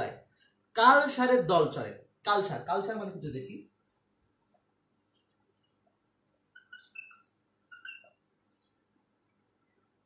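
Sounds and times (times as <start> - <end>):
faint high chirps: 6.5 - 10.0.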